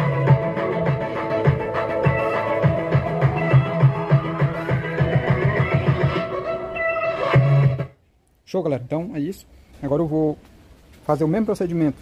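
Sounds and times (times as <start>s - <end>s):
pulsing bass line: 0.0s - 6.5s
music through a loudspeaker: 0.0s - 8.0s.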